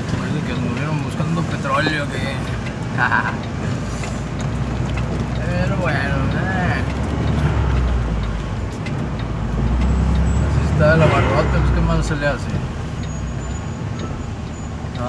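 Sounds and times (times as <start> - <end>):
vehicle interior drone: 0.0 - 15.0.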